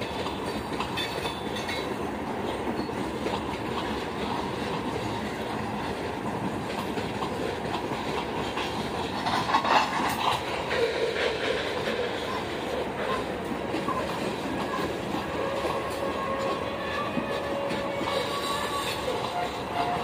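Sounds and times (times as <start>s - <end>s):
freight train cars rolling: 0.0s - 20.0s
wheels clacking over rail joints: 0.0s - 20.0s.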